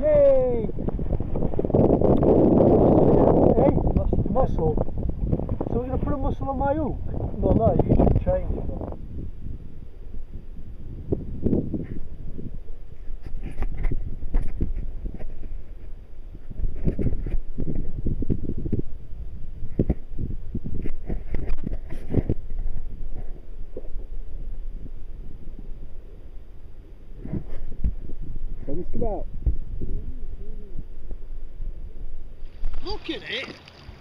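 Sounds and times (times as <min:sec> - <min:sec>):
wind rumbling on microphone: 0:00.0 - 0:34.0.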